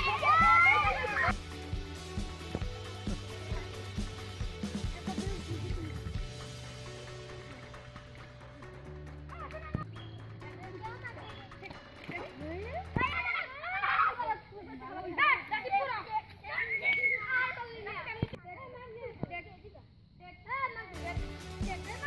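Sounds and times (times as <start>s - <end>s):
children shouting: 0.0s - 1.3s, 12.9s - 18.1s
background music with bass line: 0.0s - 13.4s, 21.0s - 22.0s.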